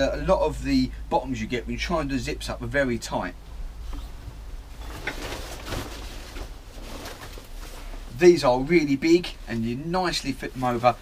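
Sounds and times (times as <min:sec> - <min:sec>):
textile jacket rustling: 0:04.0 - 0:11.0.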